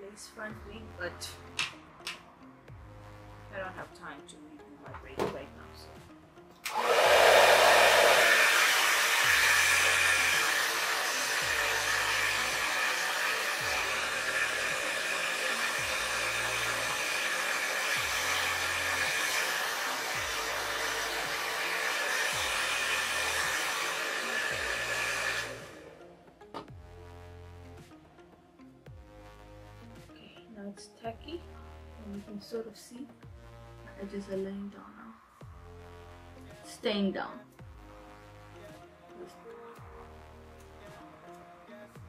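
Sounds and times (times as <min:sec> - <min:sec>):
hair dryer running: 0:06.6 - 0:26.1.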